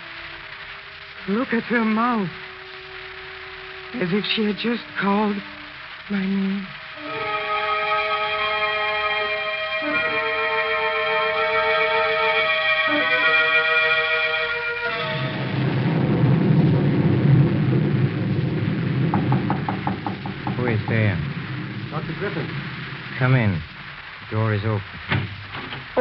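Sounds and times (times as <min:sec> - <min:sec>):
rain and wind: 0:00.0 - 0:26.0
sustained organ chords: 0:03.7 - 0:15.4
knocks on a door: 0:19.1 - 0:21.0.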